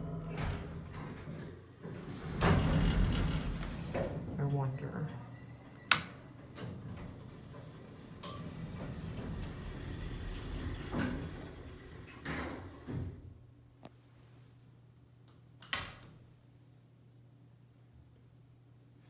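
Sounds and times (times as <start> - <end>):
elevator door sliding closed: 0.0 - 4.5, 5.3 - 13.4
metal toggle switch clicking: 15.3 - 16.0.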